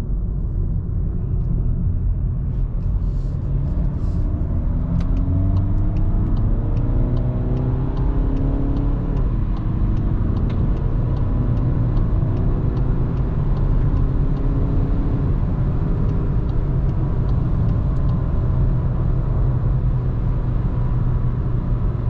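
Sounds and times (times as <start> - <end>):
diesel engine accelerating: 0.0 - 22.0
road and tyre rumble: 0.0 - 22.0.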